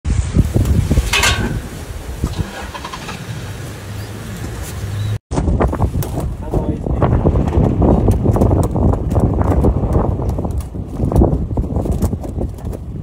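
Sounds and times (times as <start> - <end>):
vehicle engine idling: 2.2 - 5.2.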